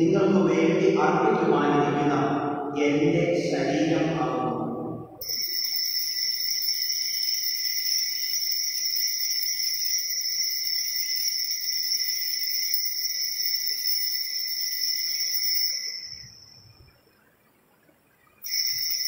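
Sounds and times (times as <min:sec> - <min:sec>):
hand bells ringing: 0:05.2 - 0:16.7, 0:18.4 - 0:19.0.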